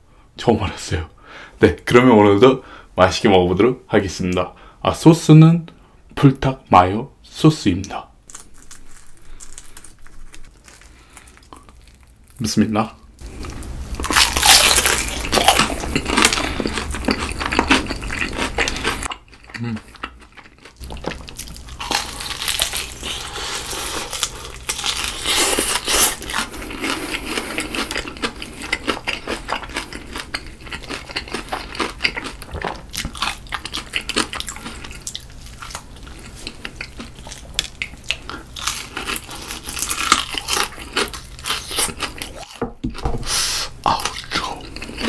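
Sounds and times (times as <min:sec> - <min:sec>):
crunching and chewing fried chicken: 0:08.2 - 0:42.6, 0:43.4 - 0:45.0.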